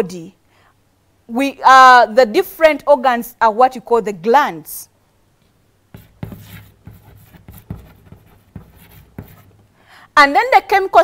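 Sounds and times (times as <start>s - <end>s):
chalk tapping and scratching: 5.9s - 9.8s.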